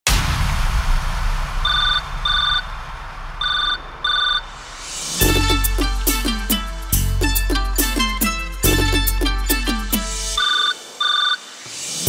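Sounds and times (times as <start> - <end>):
hissing noise with deep bass: 0.1 - 6.0, 10.2 - 12.0
electronic telephone ring: 10.4 - 11.4.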